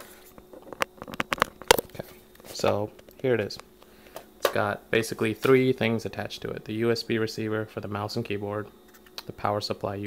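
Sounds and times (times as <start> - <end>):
clicks and knocks of plastic parts: 0.4 - 4.6.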